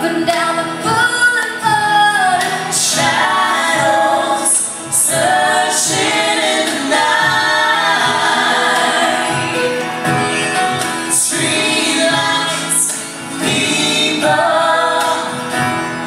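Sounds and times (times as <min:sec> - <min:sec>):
live pop band with singers: 0:00.0 - 0:16.0.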